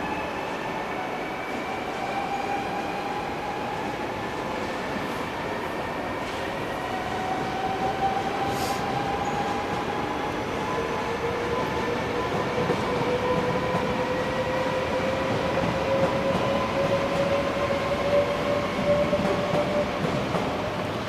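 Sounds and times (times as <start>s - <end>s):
train wheels rumbling on rails: 6.2s - 21.0s.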